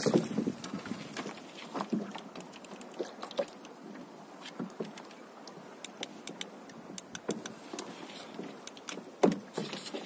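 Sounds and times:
clicks and knocks of gear: 4.4s - 10.0s.

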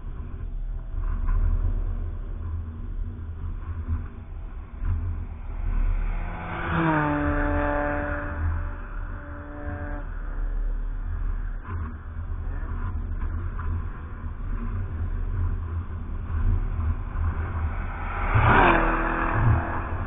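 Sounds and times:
race car engines rumbling: 0.0s - 20.0s
race car passing by: 3.4s - 20.0s.

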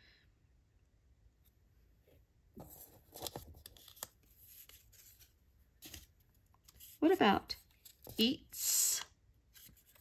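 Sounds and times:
paper cards rustling: 2.6s - 8.3s, 9.5s - 10.0s.

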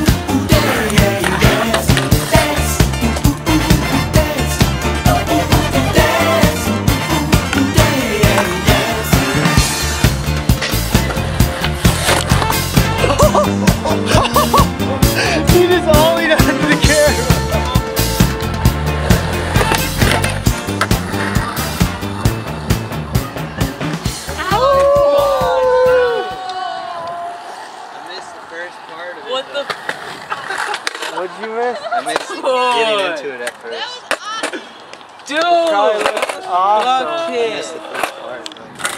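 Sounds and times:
held bass line: 0.0s - 26.0s.

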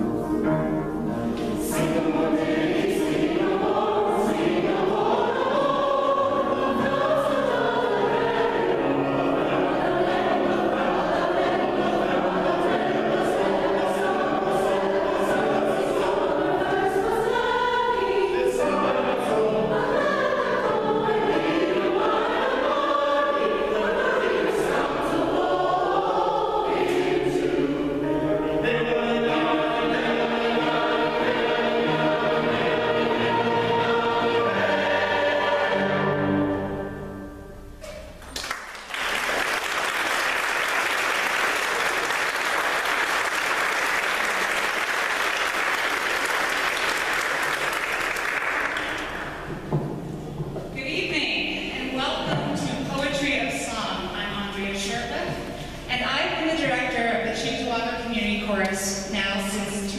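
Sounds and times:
piano accompaniment: 0.0s - 38.2s
mixed choir singing: 1.3s - 37.3s.

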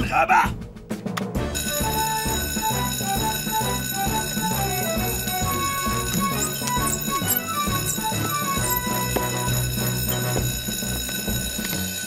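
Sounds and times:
upbeat cartoon action music: 0.0s - 11.6s
fire alarm bell ringing: 1.5s - 12.0s.

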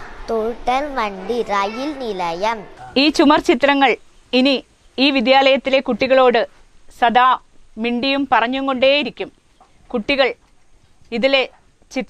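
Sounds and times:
woman speaking: 2.8s - 9.3s, 9.9s - 10.4s, 11.1s - 12.0s.

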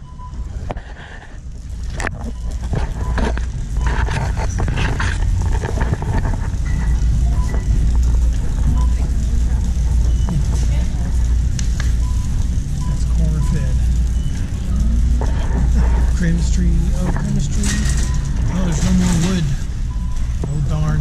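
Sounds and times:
distant voices: 1.4s - 21.0s
shopping cart wheels rolling: 1.4s - 21.0s.

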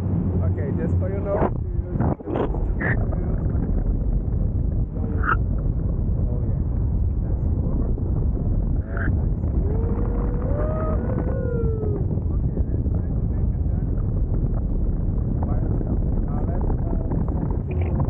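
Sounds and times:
wind rushing over microphone: 0.0s - 18.0s
faint voice: 8.8s - 13.9s.

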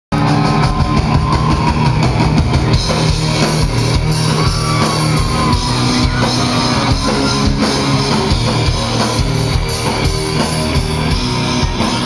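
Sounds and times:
bass guitar: 0.1s - 12.0s
distorted electric guitar: 0.1s - 12.0s
drum kit steady beat: 0.1s - 12.0s.

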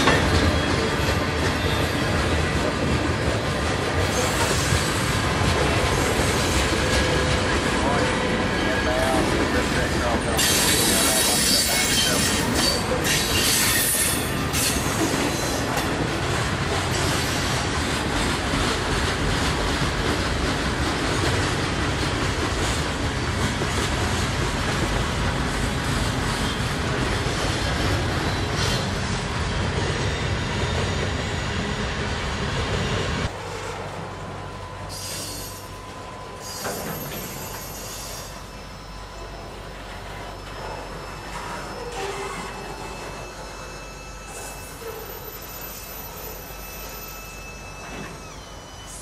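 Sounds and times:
freight train wheels rumbling: 0.0s - 49.0s
wheel squeal: 10.2s - 15.8s, 34.9s - 49.0s.

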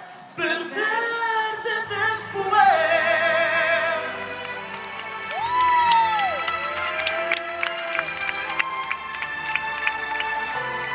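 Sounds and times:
live concert music: 0.0s - 10.9s
crowd cheering: 4.4s - 10.9s.

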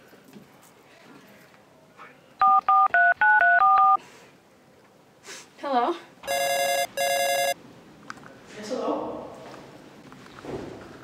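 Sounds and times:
phone keypad dialing beeps: 2.4s - 4.0s, 6.3s - 7.6s.

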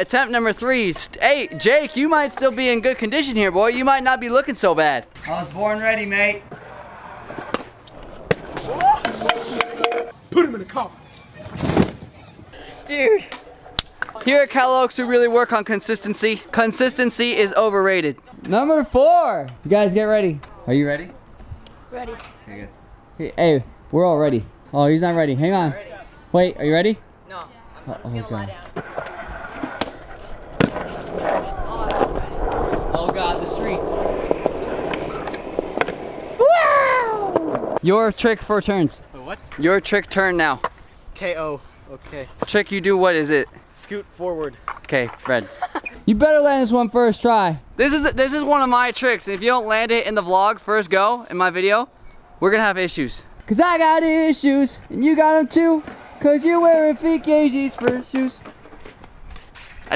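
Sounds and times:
scooter wheels rolling on concrete: 0.0s - 10.2s, 11.4s - 18.8s, 27.4s - 47.2s, 53.4s - 59.9s
people shouting: 8.6s - 9.3s, 36.4s - 37.4s.

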